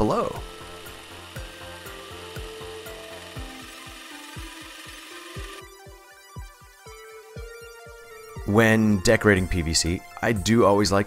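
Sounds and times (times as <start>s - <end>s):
cordless drill boring through plastic: 0.0s - 5.7s
background music with low thumps: 0.0s - 11.0s.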